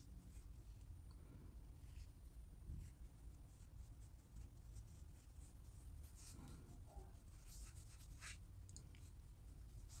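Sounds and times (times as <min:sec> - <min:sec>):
low room hum: 0:00.0 - 0:10.0
makeup brush strokes on skin: 0:01.8 - 0:10.0.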